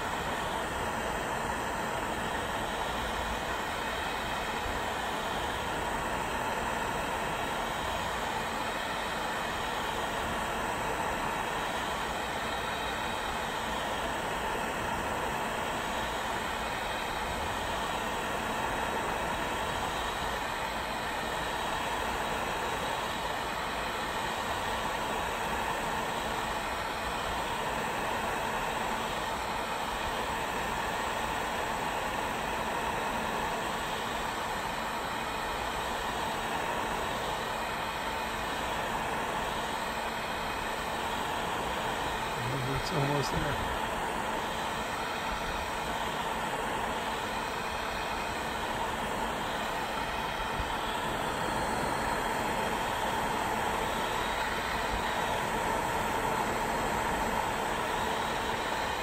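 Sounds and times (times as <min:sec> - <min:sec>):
heat gun rushing air: 0:00.0 - 0:59.0.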